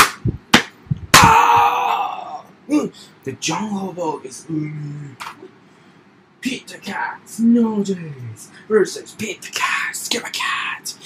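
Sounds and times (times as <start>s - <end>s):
objects smacking together: 0.0s - 1.7s
loud held steady tone: 0.0s - 5.1s.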